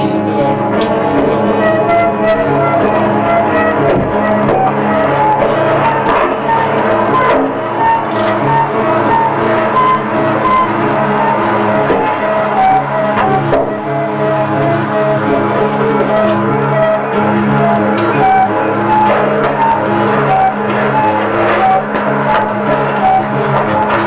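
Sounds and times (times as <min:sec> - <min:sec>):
loud music with held notes: 0:00.0 - 0:24.0.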